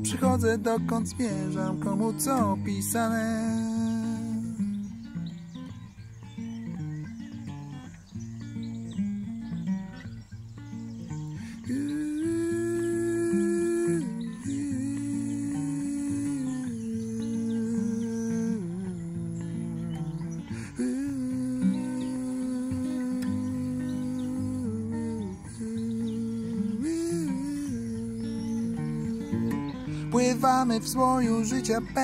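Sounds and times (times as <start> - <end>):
acoustic guitar strumming: 0.0 - 32.0
man humming: 11.4 - 32.0.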